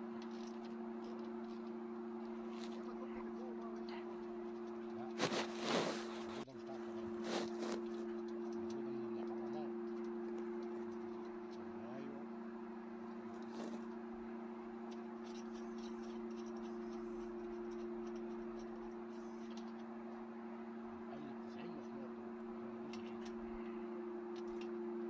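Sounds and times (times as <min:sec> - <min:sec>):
low two-tone hum: 0:00.0 - 0:25.0.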